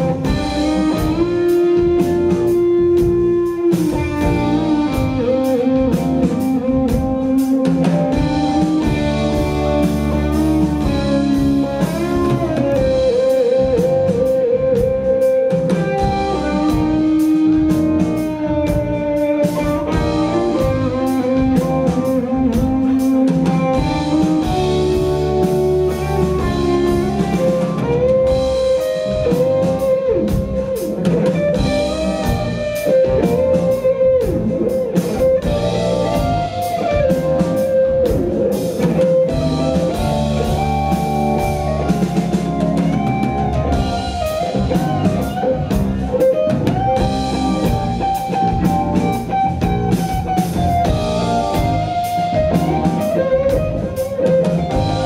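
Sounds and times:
bass guitar: 0:00.0 - 0:55.0
drum kit: 0:00.0 - 0:55.0
electric guitar lead melody: 0:00.0 - 0:55.0
keyboards: 0:00.0 - 0:55.0.

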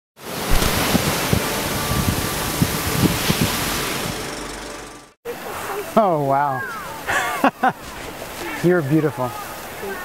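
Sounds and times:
ocean surf: 0:00.2 - 0:10.0
wind: 0:00.2 - 0:10.0
wind buffeting microphone: 0:00.3 - 0:04.4.

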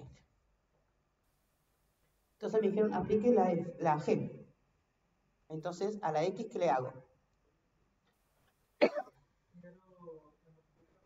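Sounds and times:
person clearing throat: 0:08.8 - 0:09.2.

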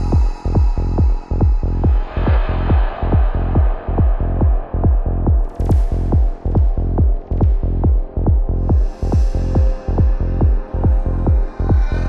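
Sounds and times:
psytrance kick drum: 0:00.0 - 0:12.0
steady low bass: 0:00.0 - 0:12.0.

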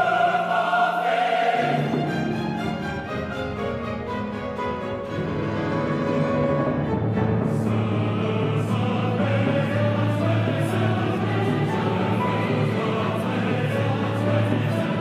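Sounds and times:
mixed choir singing: 0:00.0 - 0:03.3, 0:05.0 - 0:15.0
chamber orchestra: 0:00.0 - 0:15.0.

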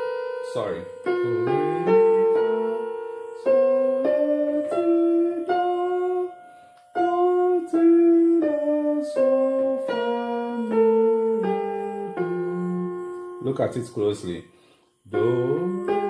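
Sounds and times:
keyboard piano melody: 0:00.0 - 0:16.0.

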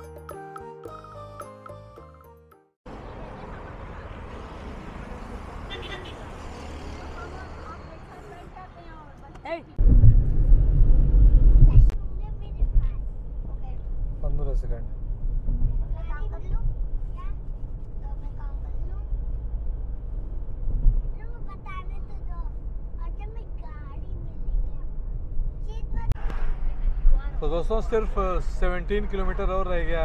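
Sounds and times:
engine and road rumble: 0:02.8 - 0:30.0.

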